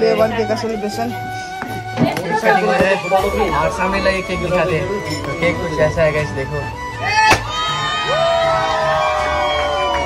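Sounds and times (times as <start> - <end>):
children shouting and cheering: 7.0 - 10.0
party popper pop: 7.3 - 7.5.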